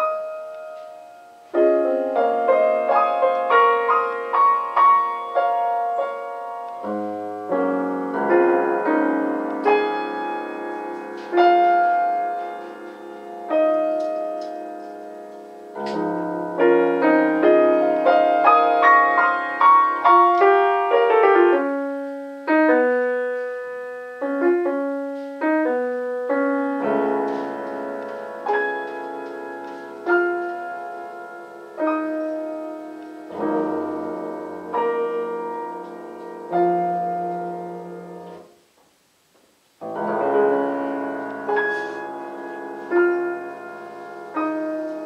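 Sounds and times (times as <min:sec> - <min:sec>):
solo piano playing: 0:00.0 - 0:45.0.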